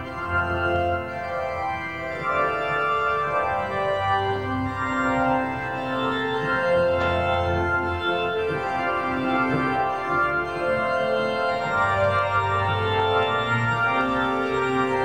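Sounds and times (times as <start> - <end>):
organ playing hymn chords: 0.0 - 15.0.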